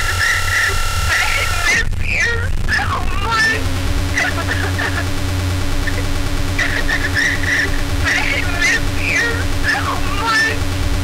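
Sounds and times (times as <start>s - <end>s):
high whistling electronic squeals: 0.0s - 1.8s
held hum tone: 0.0s - 11.0s
low bass drone: 2.5s - 11.0s.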